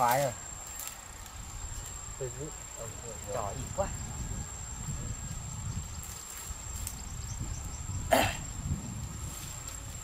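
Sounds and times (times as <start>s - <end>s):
person coughing: 8.1s - 8.4s.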